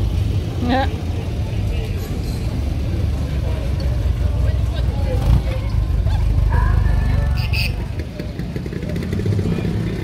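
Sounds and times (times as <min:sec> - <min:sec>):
car engine low rumble: 0:00.0 - 0:10.0
crowd chatting faintly: 0:00.3 - 0:10.0.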